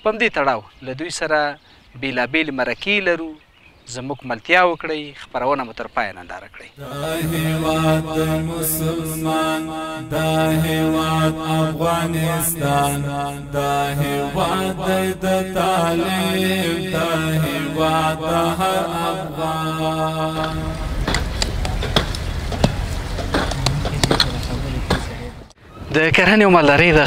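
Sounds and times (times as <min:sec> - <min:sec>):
chanted vocal music: 0:06.8 - 0:21.8.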